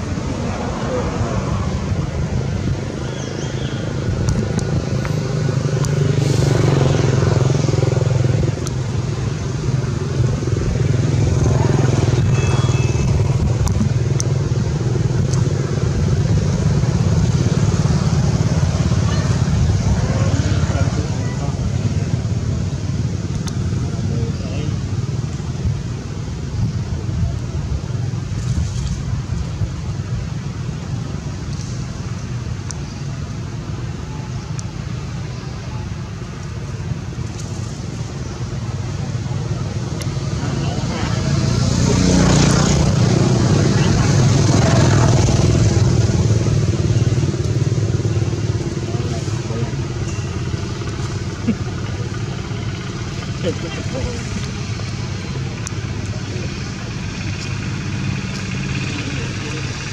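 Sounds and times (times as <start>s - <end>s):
vehicle passing close by: 0.0s - 25.2s, 37.9s - 59.9s
traffic rumble: 0.0s - 59.9s.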